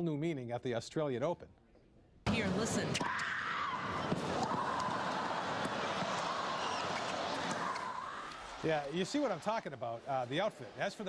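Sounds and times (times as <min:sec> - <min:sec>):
crowd din: 0:03.7 - 0:09.7.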